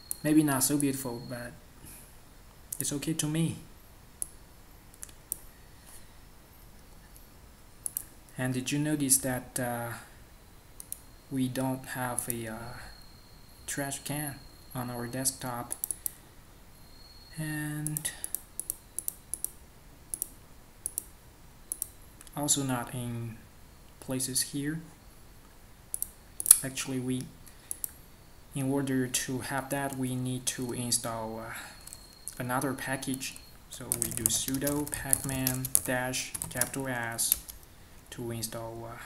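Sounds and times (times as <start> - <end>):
computer mouse clicking: 7.8 - 8.1, 10.8 - 11.0, 15.7 - 16.2, 17.8 - 21.1, 21.7 - 22.0, 25.9 - 26.6, 27.7 - 28.0, 33.1 - 36.7.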